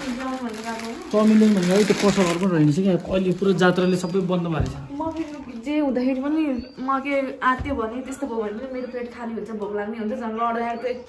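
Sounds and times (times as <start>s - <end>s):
woman talking: 0.0s - 1.1s, 4.9s - 11.0s.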